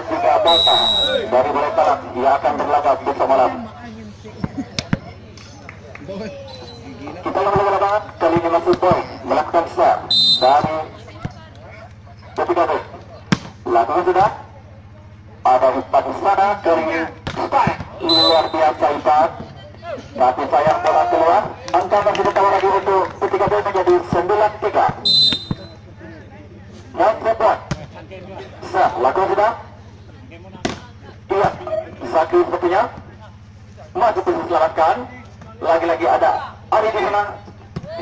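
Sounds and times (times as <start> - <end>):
steady low hum: 0.0 - 38.0
referee whistle blasts: 0.4 - 1.3, 10.1 - 10.7, 18.0 - 18.6, 25.0 - 25.8
volleyball being hit: 13.3 - 13.6, 24.8 - 25.7.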